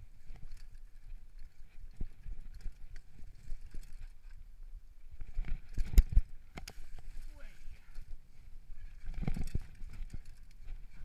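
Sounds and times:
mountain bike clattering: 0.0s - 4.5s, 8.7s - 11.0s.

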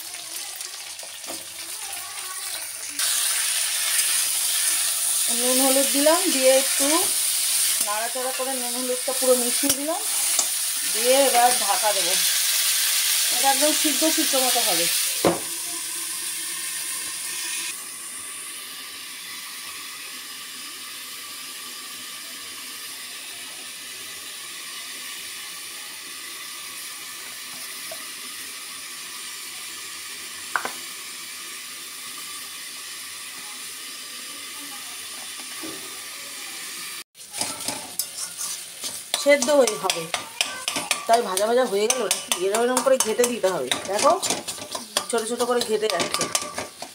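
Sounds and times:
beans sizzling in a wok: 0.0s - 46.9s
metal spatula scraping a wok: 9.1s - 11.4s, 37.2s - 46.9s.

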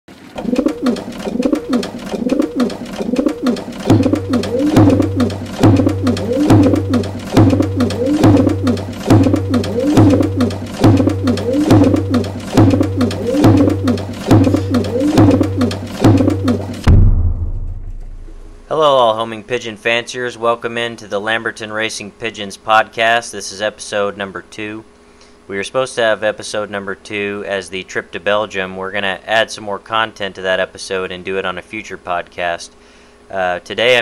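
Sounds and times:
pigeons cooing: 0.4s - 16.7s
steady low beat: 0.4s - 18.7s.

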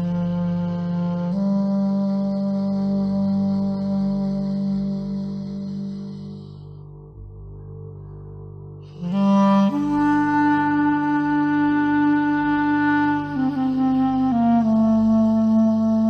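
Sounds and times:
clarinet playing long notes: 0.0s - 7.3s, 8.8s - 16.0s
steady low drone: 0.0s - 16.0s.

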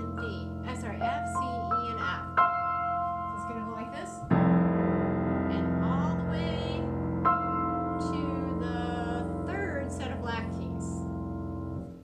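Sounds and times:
grand piano chords: 0.0s - 12.0s.

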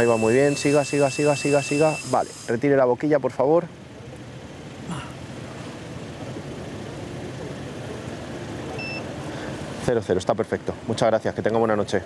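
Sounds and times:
high electronic beep: 0.0s - 2.2s, 8.8s - 9.0s
idling car engines and traffic: 0.0s - 12.0s.

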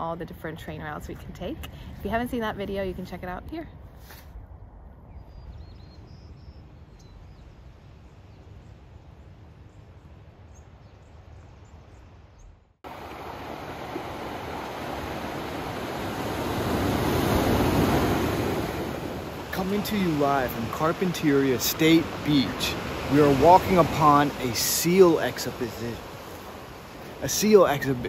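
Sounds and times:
ocean surf on beach: 12.8s - 28.0s.

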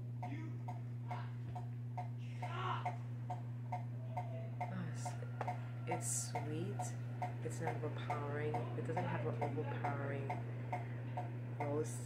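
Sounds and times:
faint ticking: 0.0s - 12.0s
low electrical hum: 0.0s - 12.0s.

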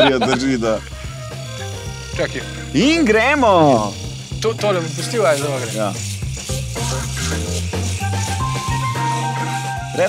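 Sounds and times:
background music: 0.0s - 10.0s
electric shaver buzzing: 0.0s - 10.0s.

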